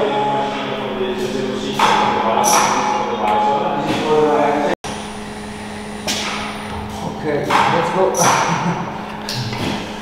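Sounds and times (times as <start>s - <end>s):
factory machinery hum: 0.0s - 10.0s.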